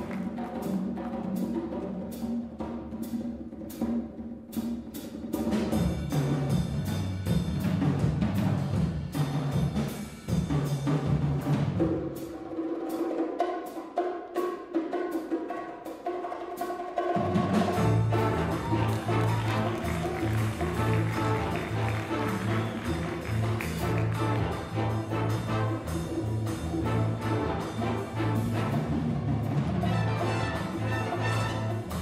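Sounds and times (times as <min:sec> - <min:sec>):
jazz big band playing: 0:00.0 - 0:32.0
sharp percussion accents: 0:05.4 - 0:32.0.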